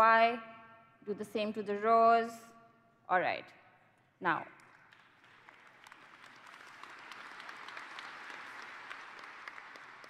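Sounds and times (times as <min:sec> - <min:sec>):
audience applauding: 0:04.9 - 0:10.0.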